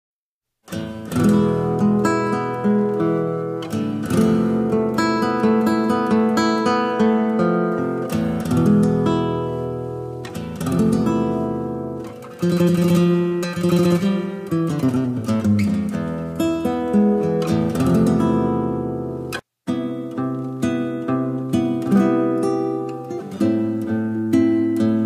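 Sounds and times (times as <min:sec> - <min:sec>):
classical guitar strumming and plucking: 0:00.6 - 0:25.0.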